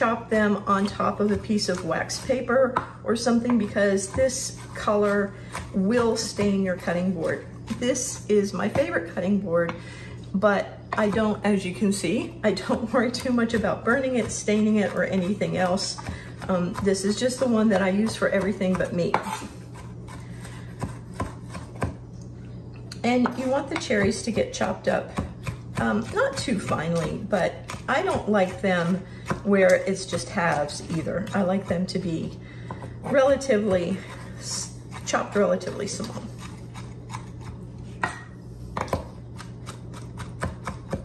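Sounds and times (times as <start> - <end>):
knife chopping on wooden board: 0.7 - 9.8, 12.5 - 22.0, 23.2 - 31.8, 34.9 - 41.0.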